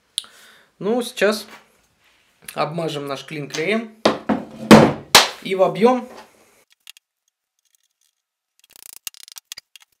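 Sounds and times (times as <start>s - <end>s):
faint clicks and scrapes of tools: 6.6s - 10.0s.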